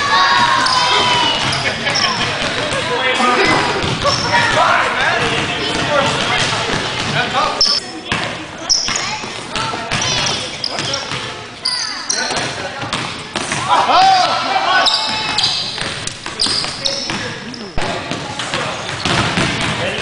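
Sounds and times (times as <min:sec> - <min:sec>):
basketball bouncing: 0:00.4 - 0:11.4, 0:12.3 - 0:13.7, 0:15.0 - 0:20.0
sneakers squeaking on court: 0:00.4 - 0:13.7, 0:14.8 - 0:20.0.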